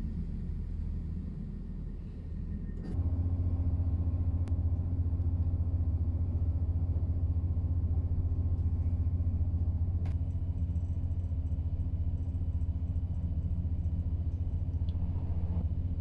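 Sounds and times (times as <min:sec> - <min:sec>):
train running rumble: 0:00.0 - 0:16.0
steady hum: 0:11.8 - 0:16.0.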